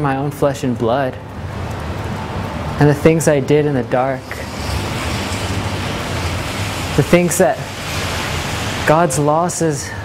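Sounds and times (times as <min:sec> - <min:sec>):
street hiss: 0:01.4 - 0:10.0.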